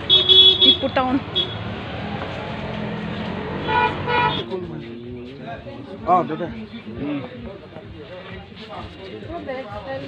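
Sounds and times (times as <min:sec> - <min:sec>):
vehicle horn toots: 0:00.0 - 0:01.6, 0:03.6 - 0:04.5
busy street noise: 0:00.0 - 0:10.0.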